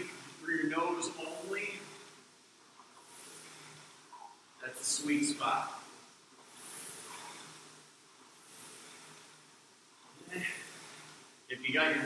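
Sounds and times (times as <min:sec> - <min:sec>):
rowing machine flywheel whooshing: 0:00.0 - 0:12.0.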